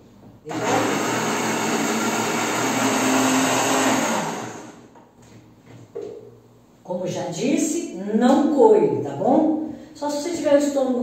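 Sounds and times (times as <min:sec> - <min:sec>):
blender running: 0:00.5 - 0:04.9.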